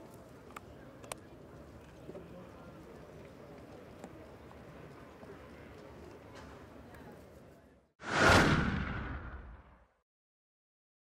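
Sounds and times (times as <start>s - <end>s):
faint court ambience: 0.0s - 7.9s
whoosh with deep boom: 8.0s - 9.8s.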